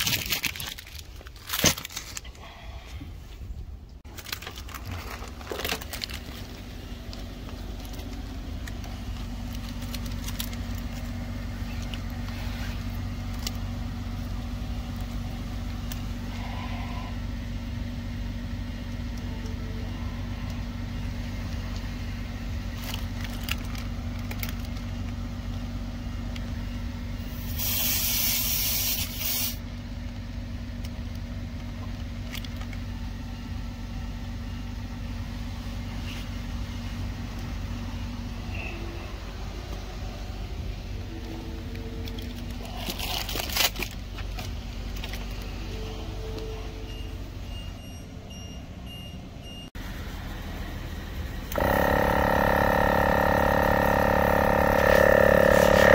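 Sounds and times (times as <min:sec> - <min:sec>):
steady motor hum: 0:04.6 - 0:27.6, 0:49.8 - 0:55.9
compressed air hissing: 0:27.3 - 0:29.6.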